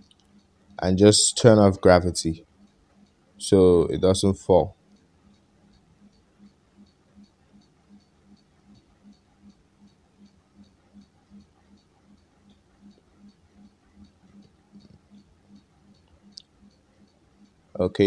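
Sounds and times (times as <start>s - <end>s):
faint even ticking: 0.0s - 18.0s.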